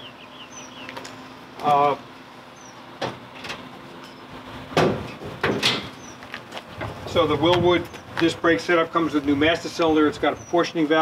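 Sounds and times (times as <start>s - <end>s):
metal hood clunks: 3.0s - 3.7s, 4.7s - 6.0s
hood hinges creaking: 3.0s - 8.4s.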